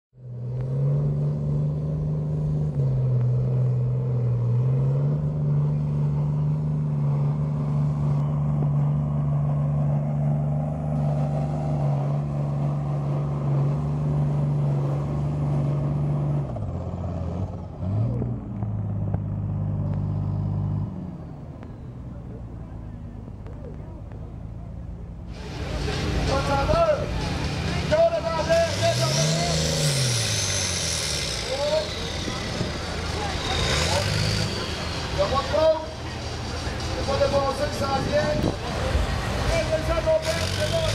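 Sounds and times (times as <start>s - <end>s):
tractor engine drone: 0.1s - 40.9s
crowd noise and voices: 21.7s - 29.8s, 31.3s - 40.9s
short engine rev: 25.2s - 40.9s.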